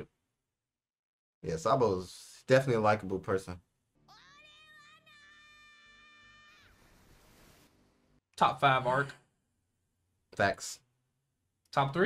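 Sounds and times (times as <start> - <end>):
high child-like voice shouting: 4.0 - 6.8.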